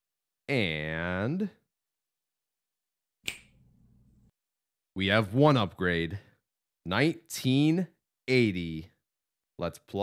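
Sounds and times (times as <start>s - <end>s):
sharp click: 3.2s - 3.6s.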